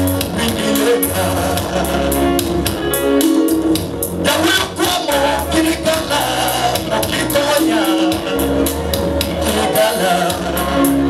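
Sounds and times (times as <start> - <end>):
band playing gospel music: 0.0 - 11.0.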